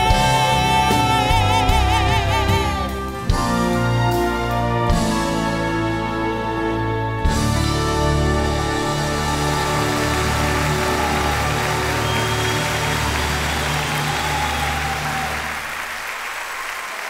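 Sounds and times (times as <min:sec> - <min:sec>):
orchestra closing chord with drums: 0:00.0 - 0:15.8
audience applause: 0:08.1 - 0:17.0.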